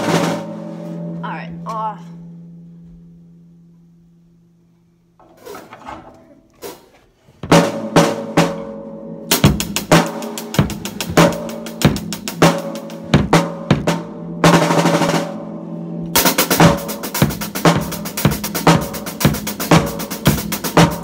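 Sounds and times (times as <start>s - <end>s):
drum kit played with sticks: 0.0s - 1.8s, 5.2s - 21.0s.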